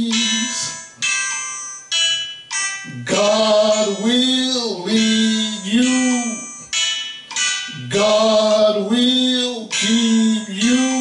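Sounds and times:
struck chords ringing: 0:00.0 - 0:11.0.

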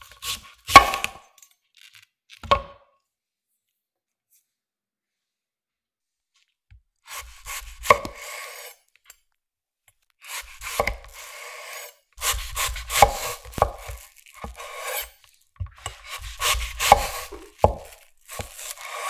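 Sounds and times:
knife rasping through apple: 0:07.0 - 0:08.9, 0:10.2 - 0:19.0
knife tapping cutting board: 0:15.8 - 0:18.5.

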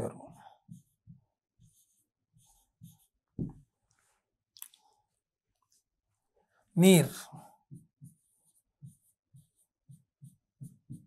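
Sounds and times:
marker squeaking on whiteboard: 0:00.7 - 0:03.2, 0:07.7 - 0:11.0.

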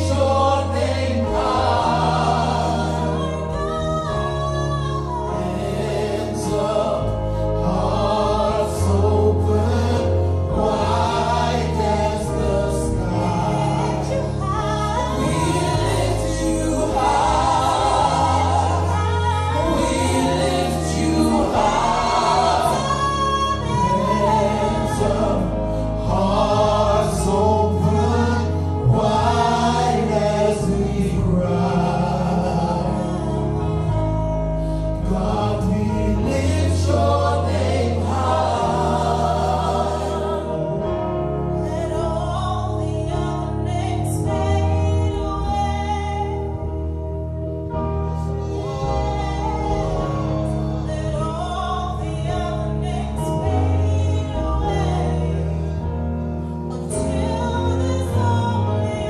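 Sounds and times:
group singing gospel song: 0:00.0 - 0:46.7, 0:47.9 - 0:59.0
band with held bass chords: 0:00.0 - 0:59.0.

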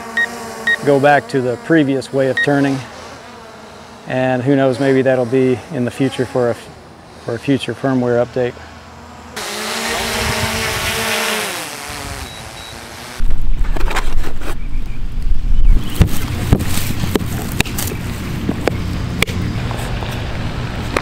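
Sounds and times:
drone propellers whining: 0:00.0 - 0:14.2
wind buffeting microphone: 0:09.8 - 0:11.1.

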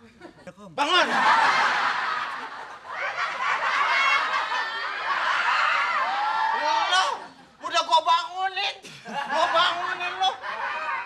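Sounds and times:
group of people laughing: 0:00.0 - 0:06.2, 0:08.9 - 0:11.0.

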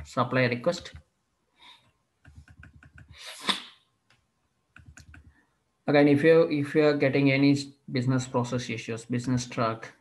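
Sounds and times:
keyboard typing: 0:02.2 - 0:03.2, 0:04.7 - 0:05.4.

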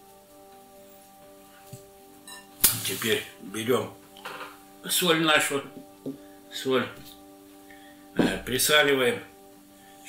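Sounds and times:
faint music with held notes: 0:00.0 - 0:10.0.

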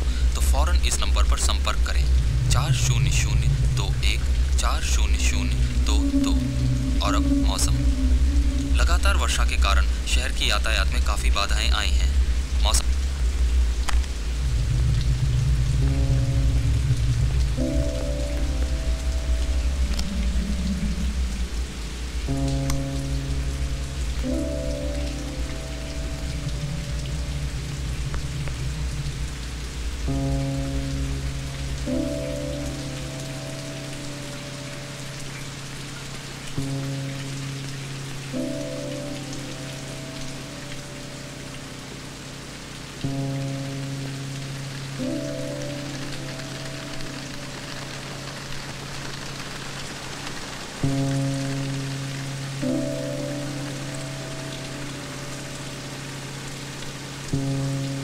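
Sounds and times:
heavy rain: 0:00.0 - 0:58.0
suspenseful film score: 0:00.0 - 0:58.0
deep rumble: 0:00.7 - 0:11.1, 0:11.7 - 0:33.7.

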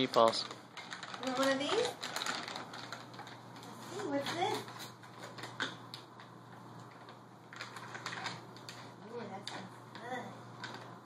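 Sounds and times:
packaging crinkling: 0:00.0 - 0:09.9
sharp crackles and clicks: 0:00.0 - 0:11.0.

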